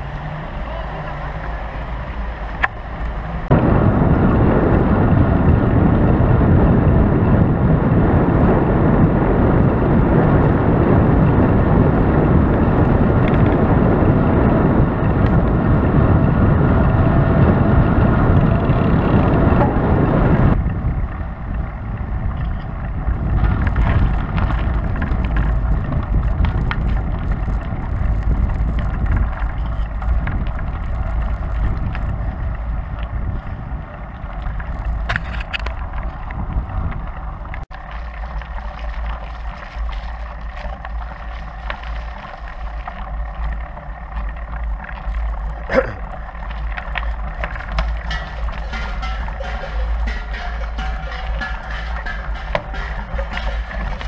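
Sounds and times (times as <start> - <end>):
road noise: 0.0 - 54.0
wind rushing over microphone: 0.0 - 54.0.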